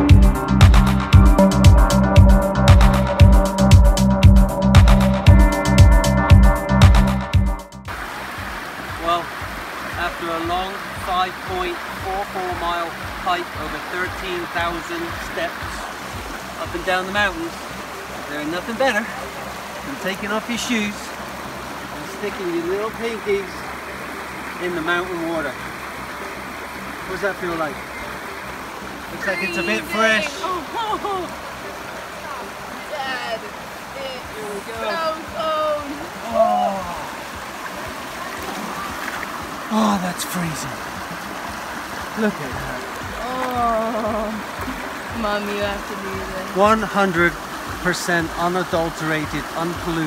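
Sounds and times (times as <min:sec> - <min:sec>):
electronic music: 0:00.0 - 0:07.9
creek running over rocks: 0:00.0 - 0:50.0
voices talking: 0:09.0 - 0:41.4, 0:42.0 - 0:50.0
person exclaiming: 0:29.2 - 0:31.3, 0:34.8 - 0:37.2, 0:43.2 - 0:44.4
faint voice: 0:34.2 - 0:37.2.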